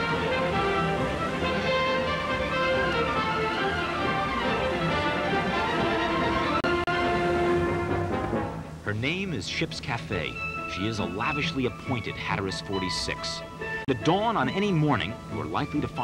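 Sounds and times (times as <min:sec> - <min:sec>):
instrumental music with sustained notes: 0:00.0 - 0:09.3, 0:10.0 - 0:16.0.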